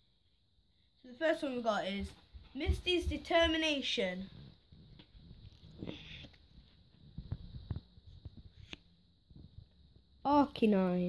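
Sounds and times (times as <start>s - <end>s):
soft rustle of cards: 2.4s - 10.1s.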